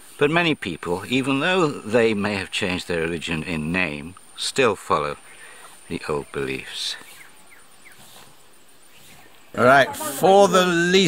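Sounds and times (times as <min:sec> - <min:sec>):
faint insect whine: 0:00.0 - 0:11.0
faint bird chirps: 0:02.1 - 0:10.2.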